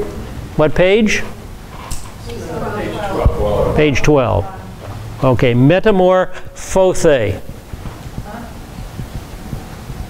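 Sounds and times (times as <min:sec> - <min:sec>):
soft low thumps: 0:07.4 - 0:10.0.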